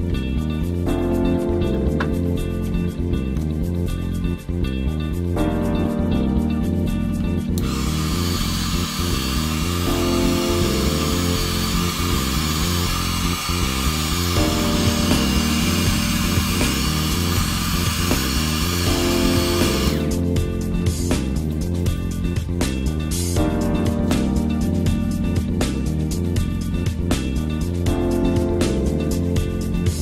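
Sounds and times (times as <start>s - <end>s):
background music: 0.0s - 30.0s
hot-air blower running: 7.6s - 20.2s.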